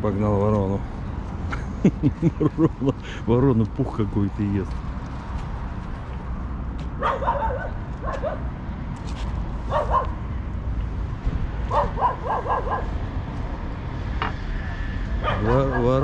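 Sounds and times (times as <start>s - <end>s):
dog barking in short yips: 7.0s - 8.4s.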